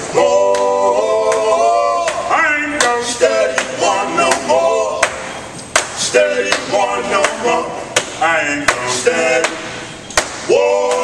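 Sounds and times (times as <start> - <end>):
men singing: 0.0 - 11.0
hand claps: 0.5 - 7.4, 9.4 - 11.0.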